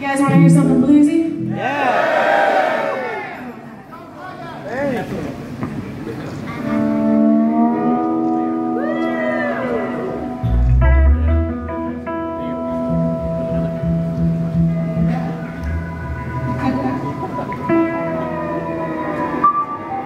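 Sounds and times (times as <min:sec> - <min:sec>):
electric guitar chords: 0:00.0 - 0:01.9, 0:06.5 - 0:20.0
audience whooping and shouting: 0:01.5 - 0:03.6, 0:08.8 - 0:10.3.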